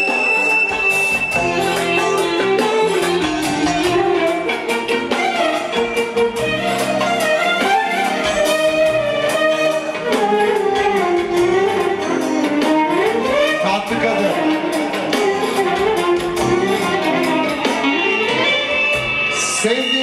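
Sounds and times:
live band instrumental music: 0.0s - 20.0s.

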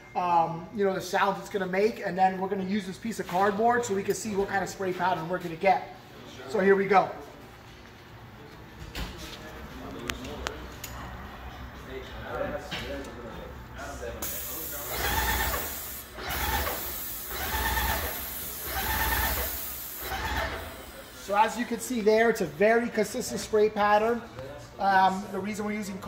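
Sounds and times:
hiss of liquid spraying: 14.2s - 20.3s
pump running in pulses: 14.8s - 21.2s.

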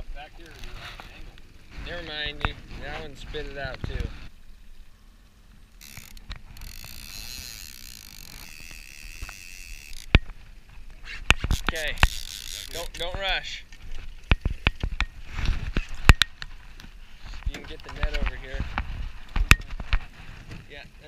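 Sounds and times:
fishing reel whirring: 5.7s - 15.2s.

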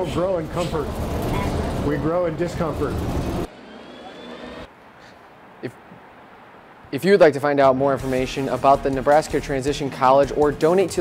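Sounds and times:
bus engine running: 0.0s - 4.7s.

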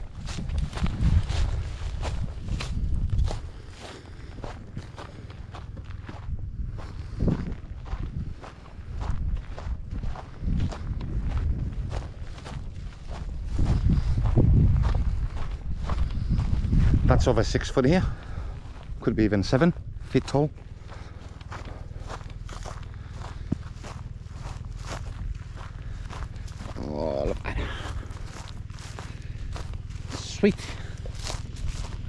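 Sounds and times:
footsteps on dry grass and dirt: 0.0s - 32.0s
low rumble: 0.0s - 32.0s.

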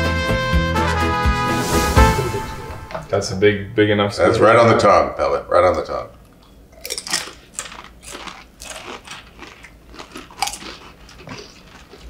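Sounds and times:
tortilla chip crunching: 6.8s - 12.0s.

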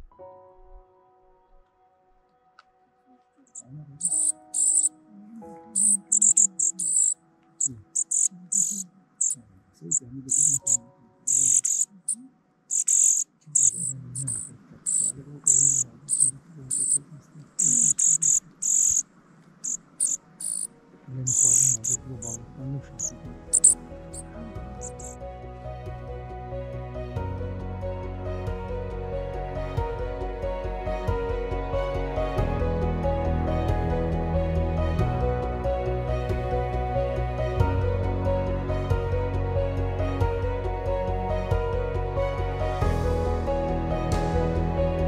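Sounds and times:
soft music: 0.0s - 45.0s
birds chirping: 3.5s - 4.9s, 5.8s - 20.7s, 21.3s - 22.4s, 23.0s - 25.2s.

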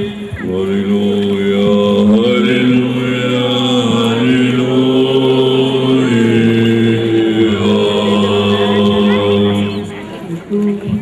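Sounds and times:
men chanting a slow melody: 0.0s - 10.1s
low vocal drone: 0.0s - 11.0s.

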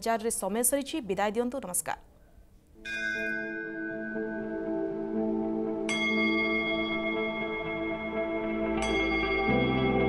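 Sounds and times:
bell ringing: 2.8s - 4.9s.

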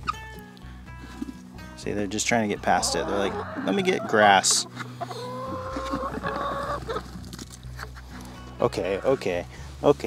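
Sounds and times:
hens clucking and calling: 2.6s - 7.2s, 7.8s - 9.3s.

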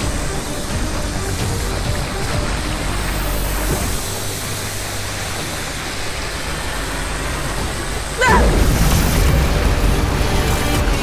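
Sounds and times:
rushing energy beam: 7.8s - 9.7s.

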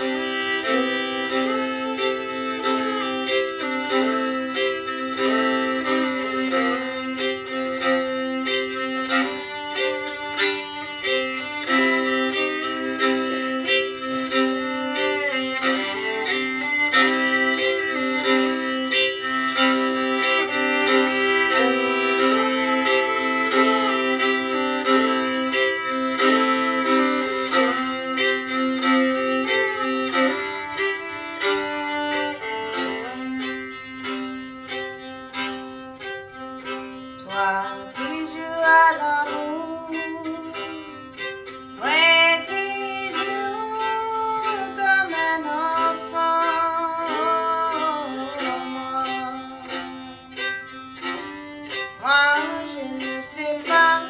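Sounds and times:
fiddle melody over steady beat: 0.0s - 54.0s.

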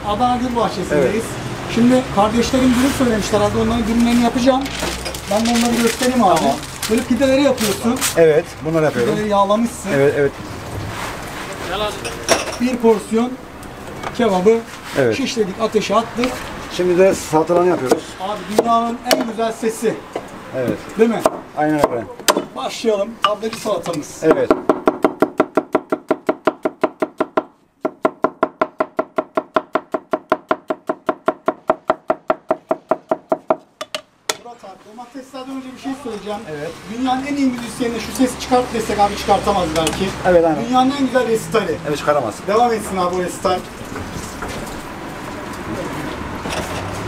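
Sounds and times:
knife chopping onion on wooden board: 24.4s - 34.4s.

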